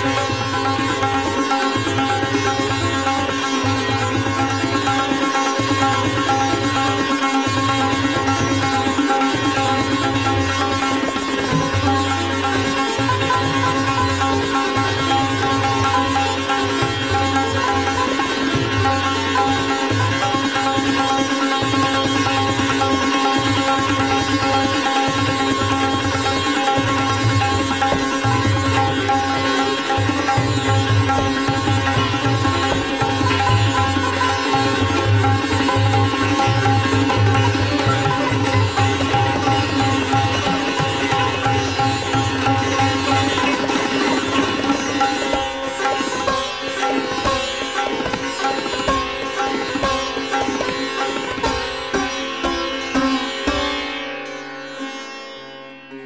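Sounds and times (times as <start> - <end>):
sitar playing fast: 0.0 - 56.0.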